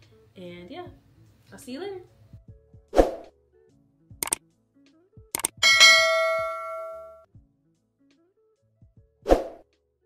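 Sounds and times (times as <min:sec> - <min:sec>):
quick clicks: 0:05.4 - 0:05.6
bright bell ding: 0:05.6 - 0:07.2.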